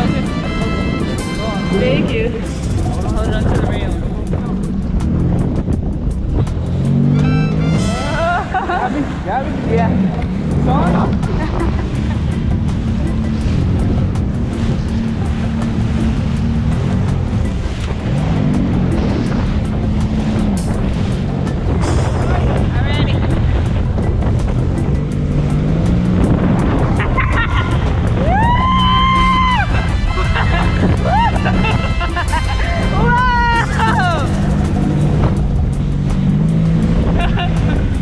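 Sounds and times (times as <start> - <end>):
background music with beat: 0.0 - 9.0, 10.4 - 38.0
jet ski engine running: 0.0 - 38.0
wind and spray noise: 7.9 - 38.0.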